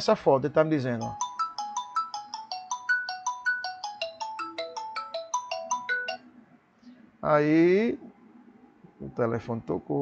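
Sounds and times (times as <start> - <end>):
phone ringtone melody: 1.0 - 6.4.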